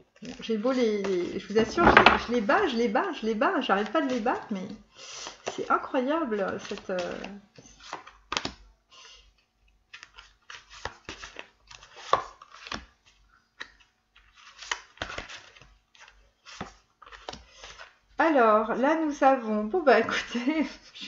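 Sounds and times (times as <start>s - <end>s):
cards shuffled and dealt: 6.4s - 8.6s, 9.9s - 18.0s.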